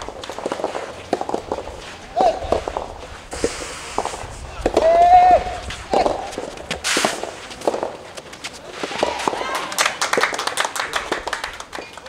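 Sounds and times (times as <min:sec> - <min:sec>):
ball striking rackets: 0:00.0 - 0:09.5
player's long shout: 0:04.8 - 0:06.1.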